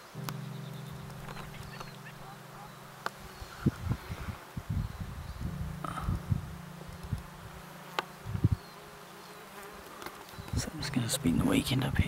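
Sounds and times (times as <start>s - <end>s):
low thumps: 0.0s - 9.5s
insect buzzing: 0.0s - 12.0s.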